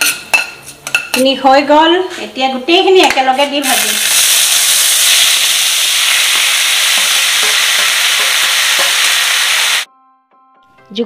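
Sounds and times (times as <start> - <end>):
vegetables sizzling in hot oil: 3.6 - 9.9.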